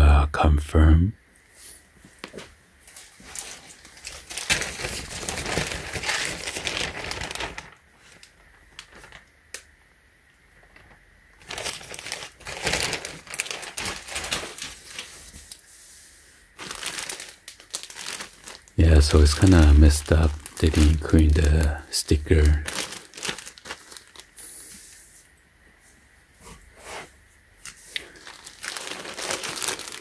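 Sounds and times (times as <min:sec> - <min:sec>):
plastic mailer bag crinkling: 0:03.0 - 0:09.3, 0:10.6 - 0:15.4, 0:16.6 - 0:24.7, 0:28.0 - 0:30.0.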